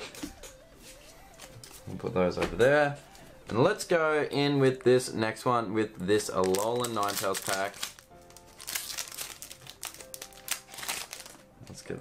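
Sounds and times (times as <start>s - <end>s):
foil wrapper crinkling: 6.3s - 11.5s.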